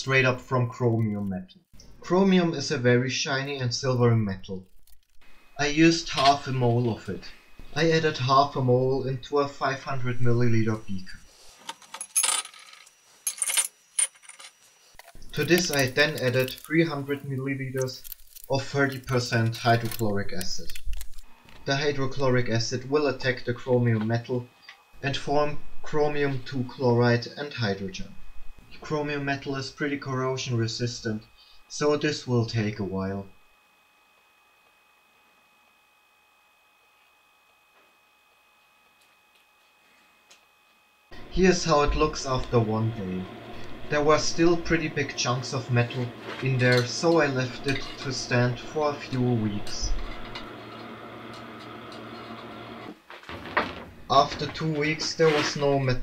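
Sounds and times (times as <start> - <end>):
thin high hum: 1.8 - 56.0
metal chunks clinking in glass beaker: 15.4 - 16.8.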